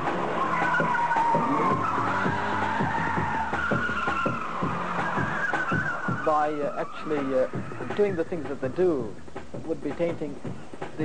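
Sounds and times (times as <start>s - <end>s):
car tyres squealing: 0.0s - 8.7s.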